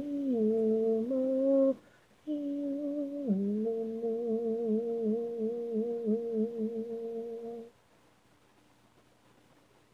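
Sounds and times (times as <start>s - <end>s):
woman singing a cappella: 0.0s - 7.8s.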